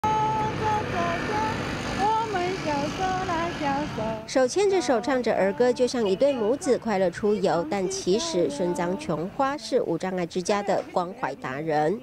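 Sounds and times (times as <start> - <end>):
steady traffic noise: 0.0 - 12.0
woman singing: 0.0 - 12.0.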